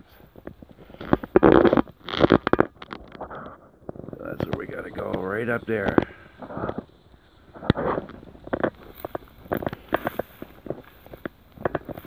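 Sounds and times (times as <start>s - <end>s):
brush rustling and crackling: 0.0s - 12.0s
twigs snapping: 4.4s - 12.0s.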